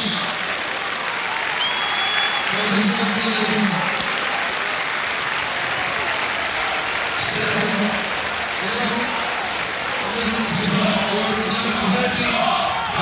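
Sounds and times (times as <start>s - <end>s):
crowd voices: 0.0s - 13.0s
stadium crowd applauding: 0.0s - 13.0s.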